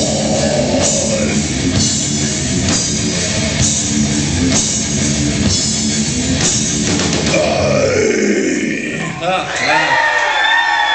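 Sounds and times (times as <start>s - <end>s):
vocalist growling: 0.0s - 1.8s, 7.3s - 9.3s.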